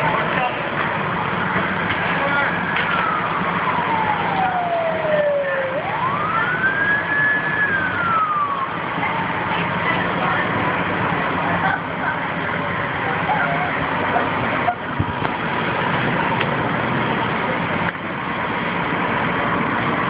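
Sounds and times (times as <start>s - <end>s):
fire engine siren wailing: 0.0s - 20.0s.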